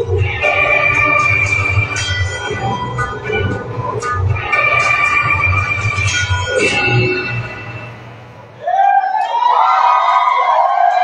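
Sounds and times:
pulsing low rumble: 0.0 - 8.5
held tones over speakers: 0.0 - 9.1.

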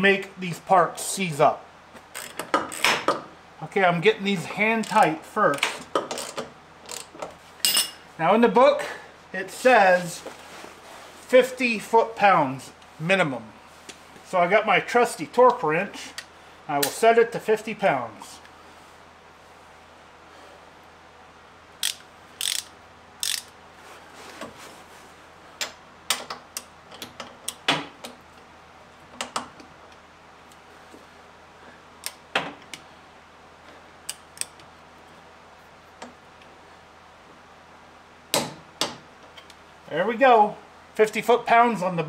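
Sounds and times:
torque wrench clicking: 21.8 - 23.5.

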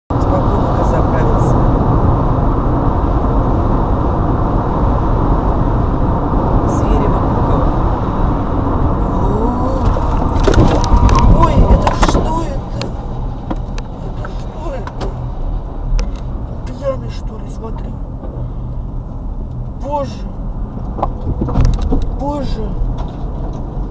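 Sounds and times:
car road and engine rumble: 0.1 - 23.9
sharp knocks and clatter: 20.8 - 22.2.

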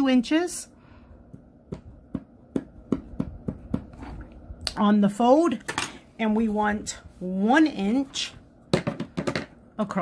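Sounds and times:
pencil tapping on fabric: 1.3 - 4.0.

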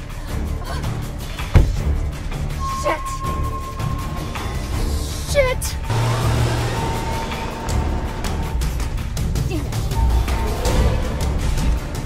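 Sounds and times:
soundtrack music: 0.0 - 12.0
car engine accelerating: 3.8 - 12.0.

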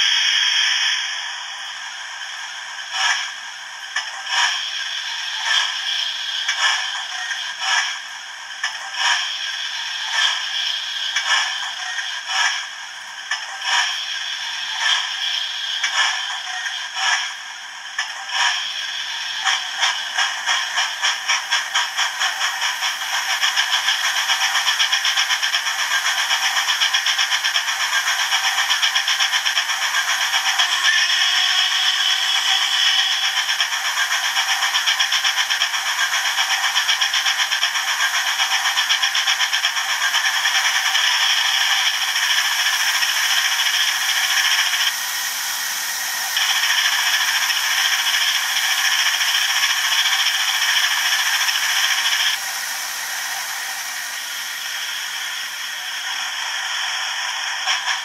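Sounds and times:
steam locomotive chuffing from small speaker: 0.0 - 58.0.

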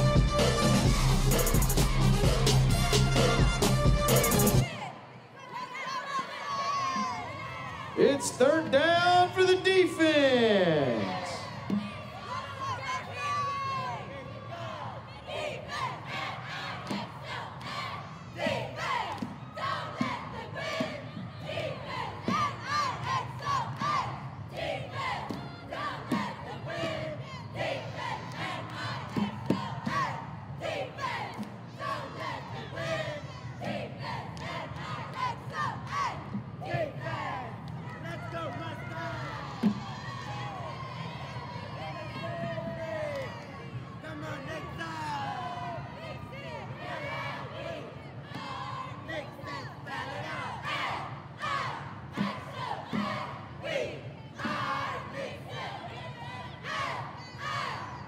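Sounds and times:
sharp rhythmic hits: 0.0 - 4.6
crowd yelling: 4.1 - 58.0
cheerleaders shouting in unison: 4.2 - 58.0.

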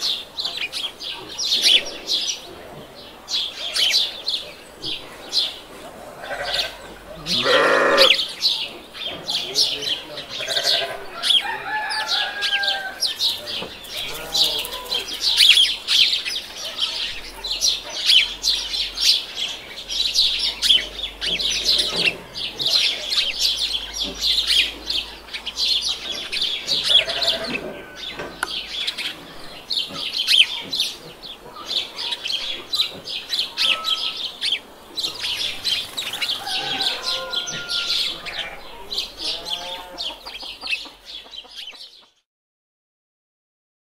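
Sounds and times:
chicken call: 36.4 - 38.2.

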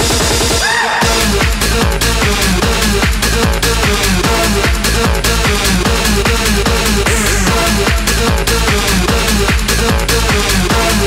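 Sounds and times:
hard house dance music: 0.0 - 11.0.

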